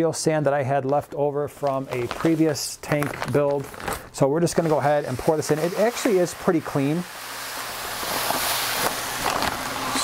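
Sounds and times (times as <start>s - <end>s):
sand pouring into glass tank: 1.6s - 3.6s, 4.2s - 10.0s.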